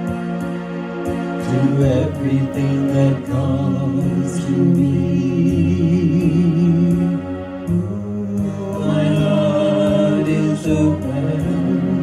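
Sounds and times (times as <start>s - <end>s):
electronic keyboard accompaniment: 0.0s - 12.0s
vocal group singing in harmony: 0.0s - 12.0s.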